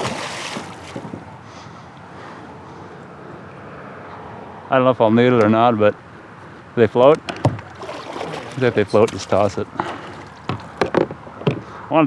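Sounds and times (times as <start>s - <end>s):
fish splashing water: 0.0s - 1.2s, 7.6s - 10.8s
wind and water rushing: 0.0s - 1.5s, 7.4s - 10.8s.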